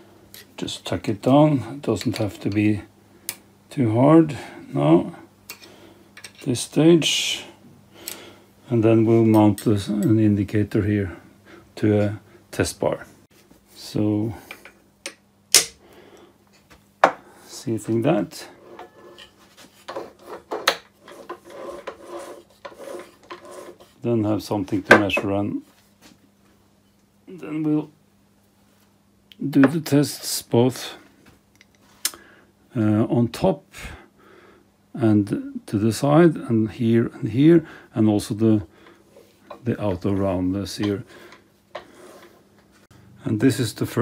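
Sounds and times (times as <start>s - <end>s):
metal rubbing and scraping: 18.3s - 24.0s.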